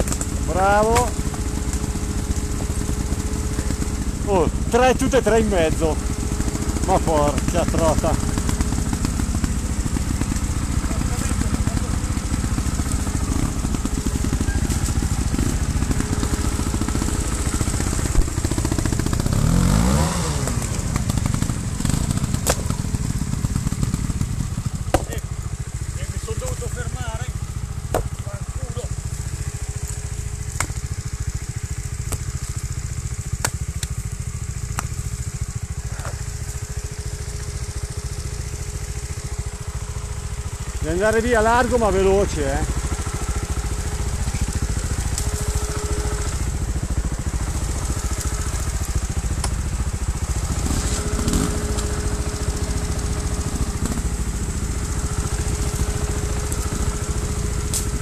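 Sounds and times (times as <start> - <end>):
motorcycle engine idling: 0.0 - 58.0
sharp knocks: 24.9 - 25.2.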